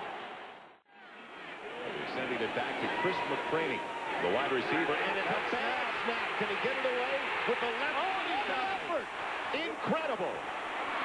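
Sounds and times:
large stadium crowd noise: 0:00.0 - 0:11.0
man announcing play-by-play: 0:01.8 - 0:10.4.

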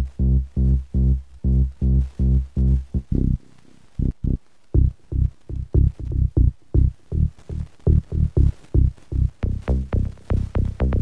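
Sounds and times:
synth bass loop: 0:00.0 - 0:03.4, 0:04.0 - 0:11.0.

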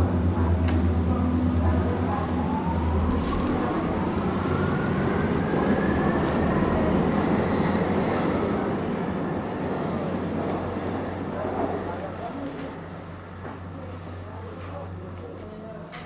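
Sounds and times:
dense rumbling noise: 0:00.0 - 0:13.5.

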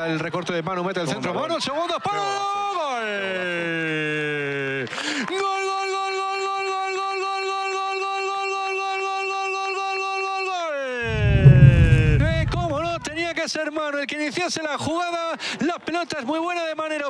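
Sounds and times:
loud low whoosh: 0:11.1 - 0:13.3.

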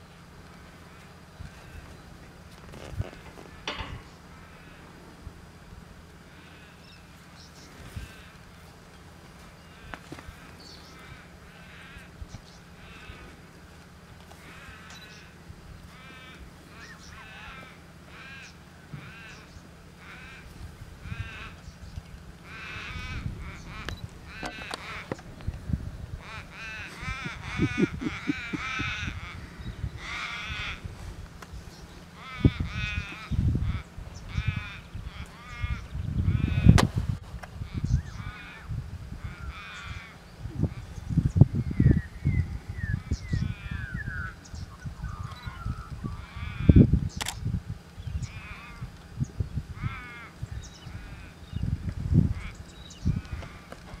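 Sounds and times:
wavering animal cries: 0:14.4 - 0:21.7, 0:22.4 - 0:25.2, 0:26.1 - 0:31.0, 0:31.9 - 0:36.8
wind buffeting microphone: 0:20.1 - 0:54.0
sharp clicks: 0:47.2 - 0:47.4.

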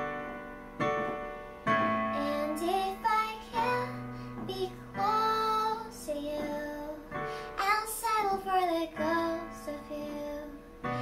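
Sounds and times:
electronic keyboard chords: 0:00.0 - 0:08.3
girl singing a ballad: 0:01.8 - 0:11.0.

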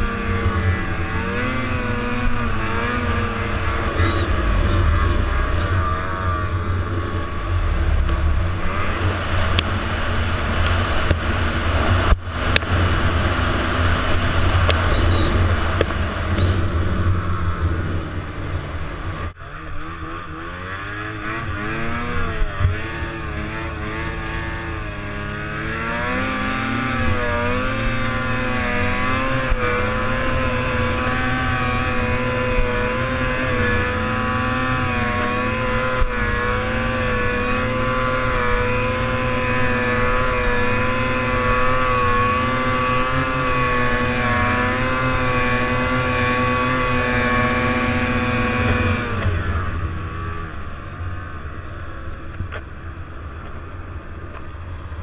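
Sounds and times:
snowmobile engine revving: 0:00.0 - 0:50.7.

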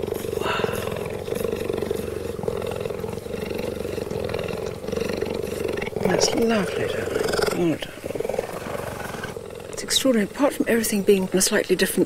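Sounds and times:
cheetah purring: 0:00.0 - 0:12.0.

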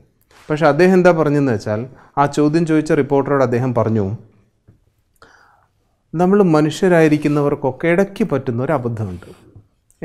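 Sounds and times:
man speaking: 0:00.5 - 0:04.2, 0:06.1 - 0:09.6
soft breathy sound: 0:05.2 - 0:06.1.

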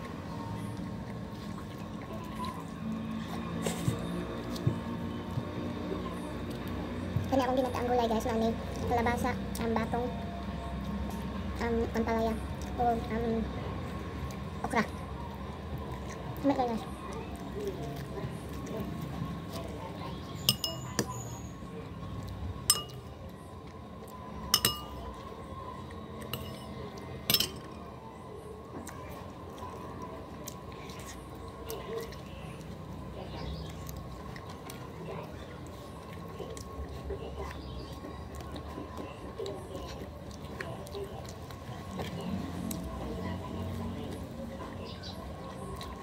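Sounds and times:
quiet eating sounds: 0:00.0 - 0:46.0
clinks against ceramic plate: 0:20.5 - 0:21.0, 0:22.7 - 0:23.0, 0:24.5 - 0:25.0, 0:26.4 - 0:26.7, 0:27.3 - 0:27.7.

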